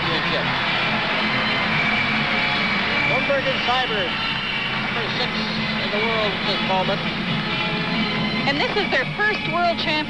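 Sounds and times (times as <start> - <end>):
music over sound system: 0.0 - 10.0.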